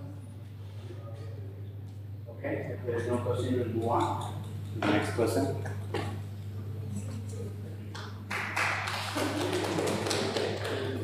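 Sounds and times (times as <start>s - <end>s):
low electrical hum: 0.0s - 11.0s
audience clapping: 7.9s - 11.0s.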